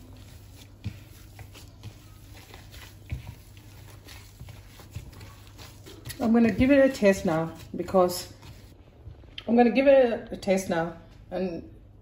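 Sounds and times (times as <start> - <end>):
hand squishing mashed potato: 0.0 - 8.8.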